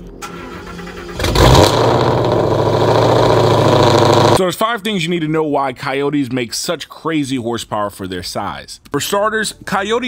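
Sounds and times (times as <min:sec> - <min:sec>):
car engine cold start and idling: 0:00.0 - 0:04.4.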